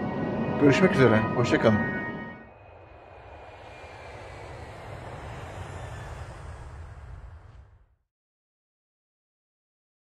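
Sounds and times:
jet airliner engine rushing: 0:00.0 - 0:08.1.

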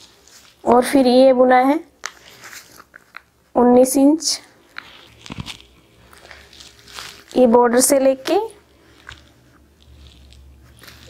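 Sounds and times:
paper rustling: 0:00.0 - 0:00.9, 0:02.0 - 0:03.3, 0:04.8 - 0:11.0.

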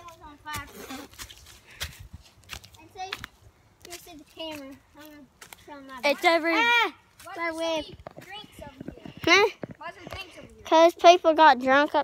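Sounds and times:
footsteps on dry leaves: 0:00.0 - 0:07.6.

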